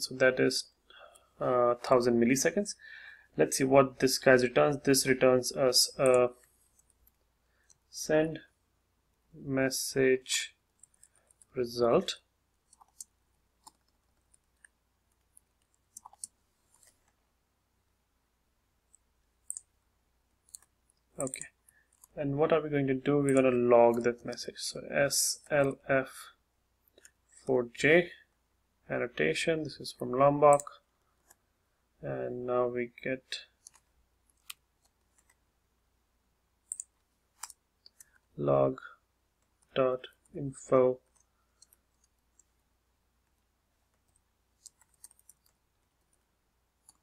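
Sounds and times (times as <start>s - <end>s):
keyboard and mouse clicks: 12.7s - 17.2s, 20.4s - 22.2s, 30.5s - 31.4s, 36.6s - 38.2s, 43.9s - 46.1s.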